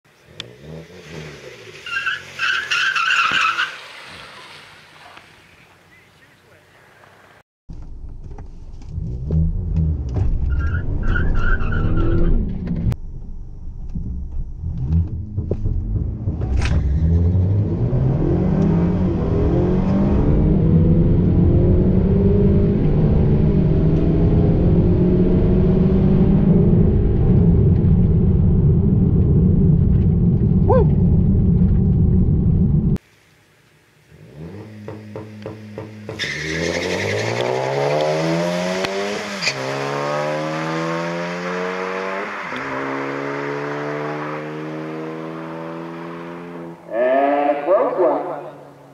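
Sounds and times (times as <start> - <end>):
car engine revving: 7.8 - 33.0, 34.1 - 48.9.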